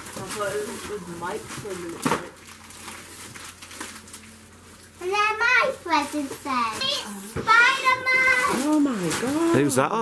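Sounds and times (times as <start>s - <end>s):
wrapping paper rustling: 0.0s - 7.0s, 7.6s - 9.8s.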